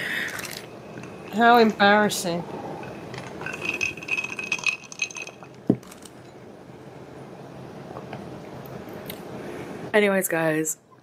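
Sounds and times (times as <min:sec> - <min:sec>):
ice cubes clinking in glass: 0:03.3 - 0:06.1.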